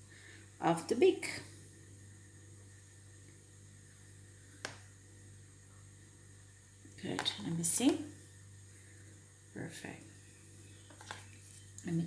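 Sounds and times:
steady low hum: 0.0s - 12.0s
woman speaking: 0.6s - 1.5s, 7.0s - 8.2s, 9.6s - 10.1s, 11.8s - 12.0s.

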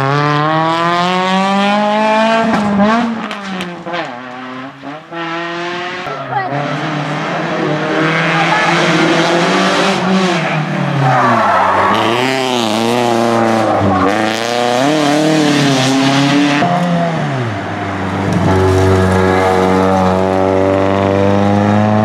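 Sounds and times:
rally car engines racing: 0.0s - 22.0s.

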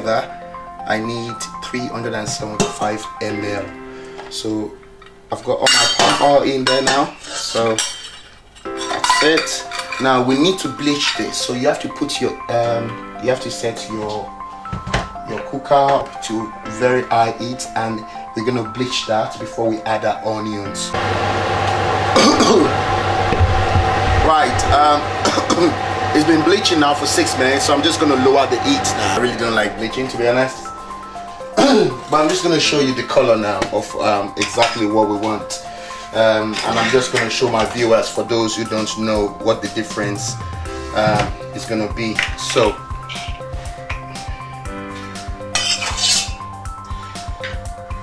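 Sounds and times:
background music with steady beat: 0.0s - 7.2s, 8.4s - 48.0s
hob humming: 21.0s - 32.1s, 39.2s - 42.0s
metal spoon scraping saucepan: 45.6s - 46.4s.

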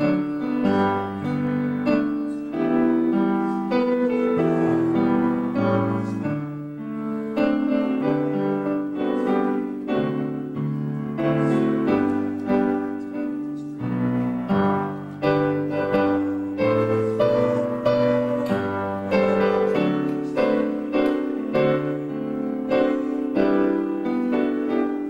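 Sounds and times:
solo piano playing chords: 0.0s - 25.0s.

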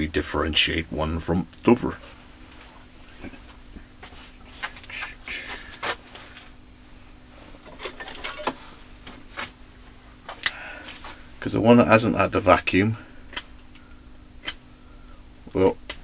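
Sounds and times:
faint hum: 0.0s - 16.0s.

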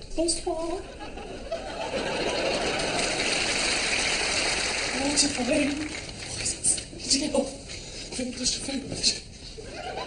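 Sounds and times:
studio audience laughing: 0.8s - 4.9s, 9.6s - 10.0s
audience applauding: 1.9s - 6.7s.

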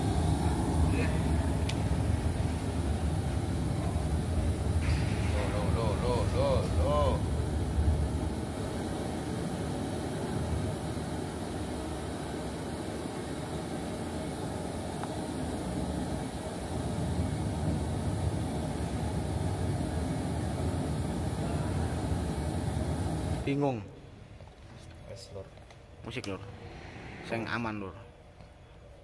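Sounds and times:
low background rumble: 0.0s - 23.5s
indistinct voices: 3.6s - 7.3s.

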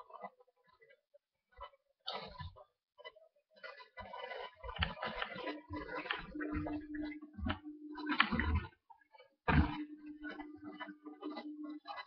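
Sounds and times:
steady low drone: 9.5s - 12.0s.

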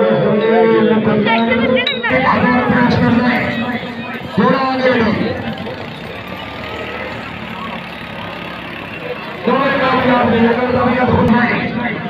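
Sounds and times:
man's loud voice: 0.0s - 5.8s
crowd chattering: 0.0s - 12.0s.

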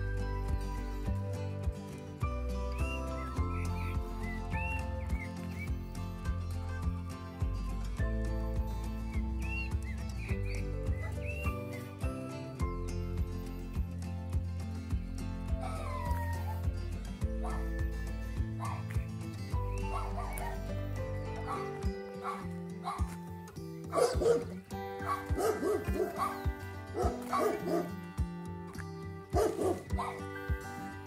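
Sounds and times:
background music with steady beat: 0.0s - 31.0s
dog barking: 17.4s - 17.8s, 18.6s - 18.9s, 19.9s - 20.7s, 21.5s - 23.2s, 23.9s - 26.4s, 27.0s - 27.9s, 29.4s - 30.3s.

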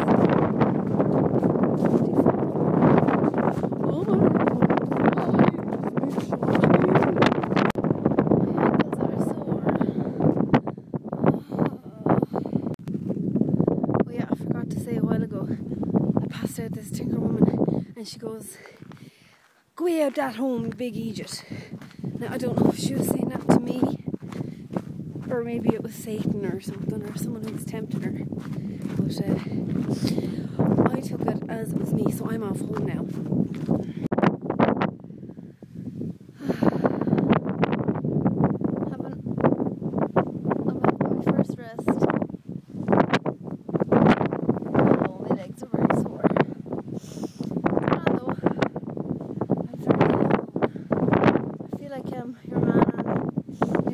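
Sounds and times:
wind buffeting microphone: 0.0s - 53.9s.

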